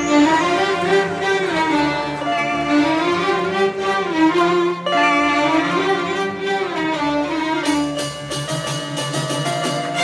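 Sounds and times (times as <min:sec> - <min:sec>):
bowed strings playing melody: 0:00.0 - 0:10.0.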